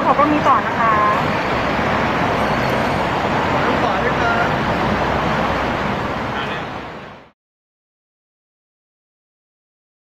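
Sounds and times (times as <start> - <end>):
road traffic noise: 0.0 - 7.4.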